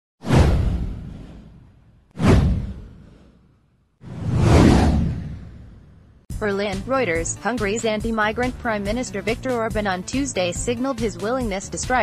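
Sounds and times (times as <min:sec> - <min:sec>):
deep boom: 0:00.2 - 0:03.2, 0:04.0 - 0:06.2
whoosh sweeping down: 0:04.0 - 0:06.2.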